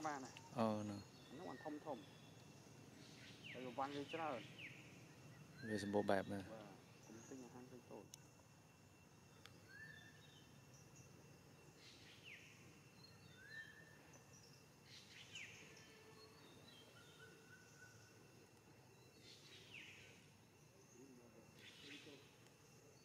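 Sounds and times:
faint high whine: 0.0s - 23.0s
small birds chirping: 0.0s - 23.0s.

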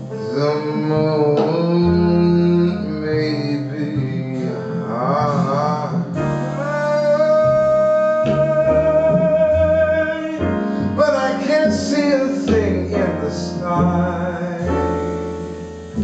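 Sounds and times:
jazz band playing: 0.0s - 16.0s
man singing jazz: 0.0s - 16.0s.

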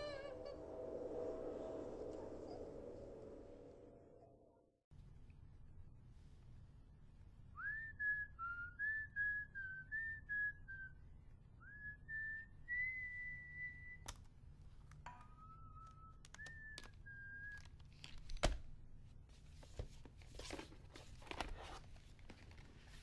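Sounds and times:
low steady hum: 0.0s - 16.4s
person whistling a tune: 7.6s - 11.0s, 11.6s - 14.0s, 15.3s - 17.7s.

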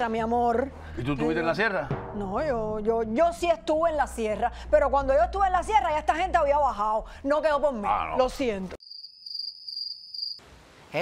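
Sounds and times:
cricket trilling: 8.8s - 10.4s.

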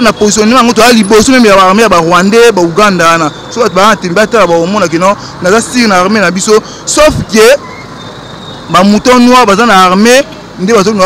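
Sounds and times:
man speaking: 0.0s - 7.6s, 8.7s - 11.0s
street traffic noise: 0.0s - 11.0s.

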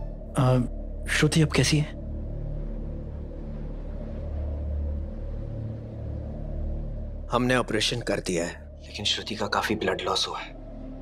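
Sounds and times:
dramatic background music drone: 0.0s - 11.0s.

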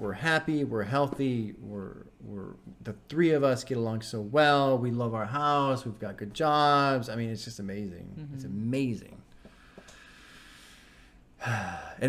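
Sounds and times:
man speaking: 0.0s - 9.2s
soft sigh: 11.4s - 12.0s.

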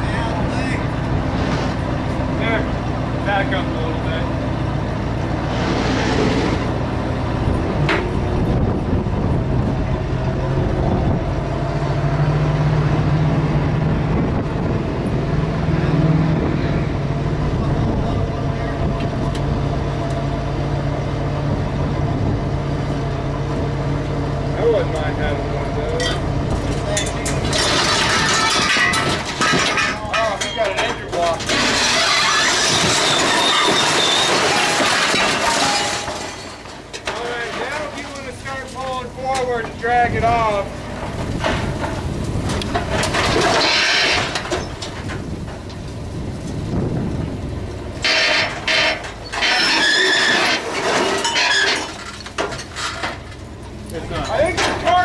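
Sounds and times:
hydraulics raising bed: 0.0s - 55.0s
truck engine running: 0.0s - 55.0s
scrap metal crashing down: 25.8s - 45.7s, 47.9s - 53.5s.

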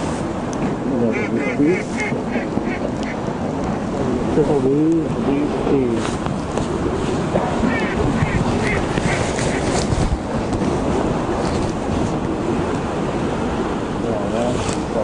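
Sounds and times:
wind buffeting microphone: 0.0s - 15.0s
duck quacks: 1.1s - 3.2s, 7.7s - 9.6s.

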